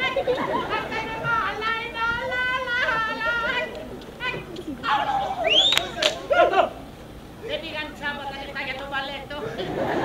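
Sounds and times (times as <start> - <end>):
actors' cries and exclamations: 0.0 - 8.0.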